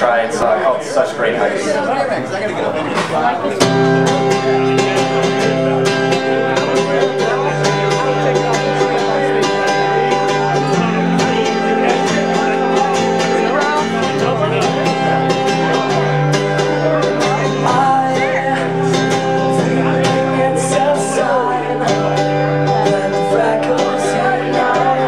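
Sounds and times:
acoustic guitar strumming: 0:00.0 - 0:25.0.

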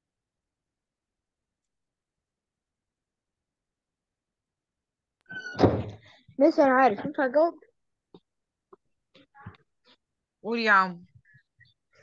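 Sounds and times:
short thump: 0:05.4 - 0:06.0.

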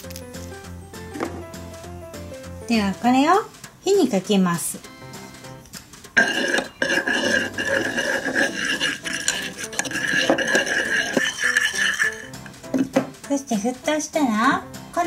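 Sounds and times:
background music: 0:00.0 - 0:15.0
toy spatula scraping saucepan: 0:06.1 - 0:12.9.

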